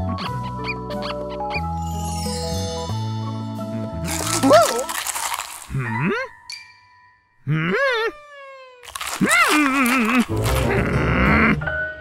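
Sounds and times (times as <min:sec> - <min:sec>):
light background music: 0:00.0 - 0:05.0.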